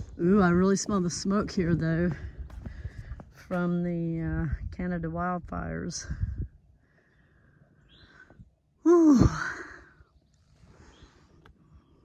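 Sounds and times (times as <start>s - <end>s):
woman sighing: 8.8s - 10.0s.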